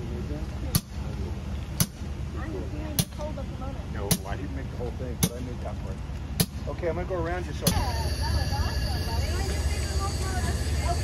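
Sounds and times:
locomotive idling rumble: 5.7s - 11.0s.

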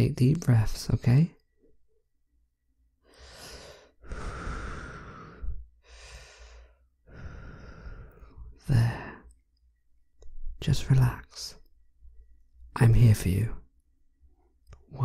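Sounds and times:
man breathing deeply: 3.0s - 9.3s.

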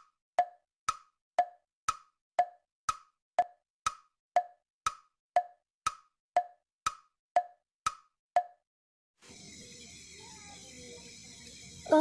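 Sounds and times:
hollow wood-block knock: 0.0s - 8.6s.

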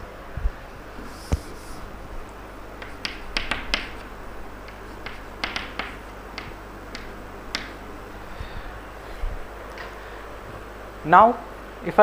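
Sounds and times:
chalk tapping on a chalkboard: 1.1s - 1.8s, 2.8s - 7.8s.

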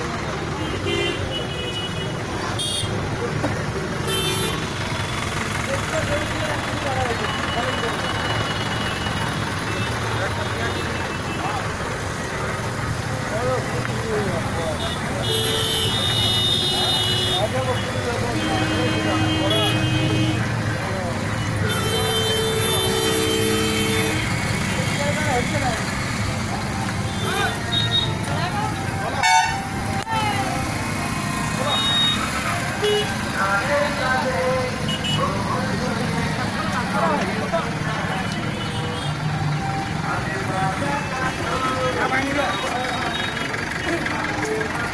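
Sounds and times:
crowd of voices: 0.0s - 44.9s
running engines: 0.0s - 44.9s
vehicle horns honking: 0.6s - 3.0s, 4.0s - 4.9s, 14.7s - 20.6s, 21.3s - 25.5s, 27.0s - 30.6s, 31.5s - 33.5s, 34.3s - 35.5s, 38.0s - 39.3s.

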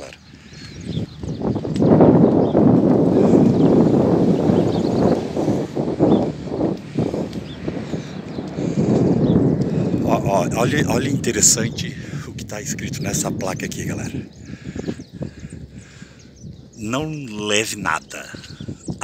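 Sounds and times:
footsteps on wooden boardwalk: 0.2s - 8.8s.

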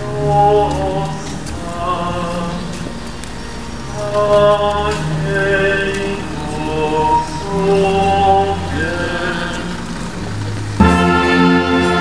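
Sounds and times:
brass band playing chords: 0.0s - 12.0s
slow hymn singing: 0.0s - 12.0s.

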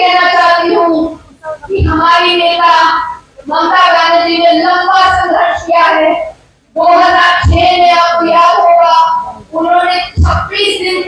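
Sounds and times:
woman speaking through microphone: 0.6s - 2.4s.

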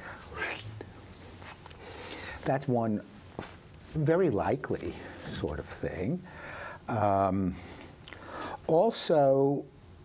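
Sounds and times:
man's breathy whisper: 0.0s - 2.5s.

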